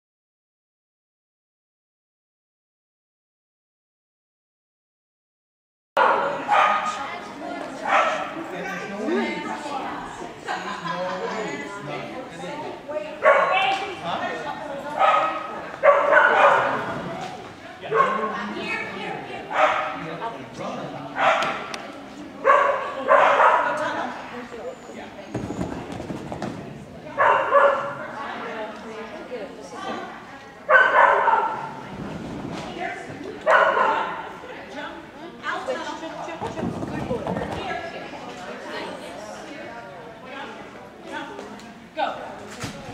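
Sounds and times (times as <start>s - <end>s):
dog barking in echoing hall: 6.0s - 7.1s, 7.8s - 8.4s, 13.2s - 13.8s, 15.0s - 17.0s, 17.9s - 18.4s, 19.4s - 20.0s, 21.2s - 21.7s, 22.4s - 23.8s, 27.1s - 28.1s, 30.7s - 31.8s, 33.4s - 34.4s.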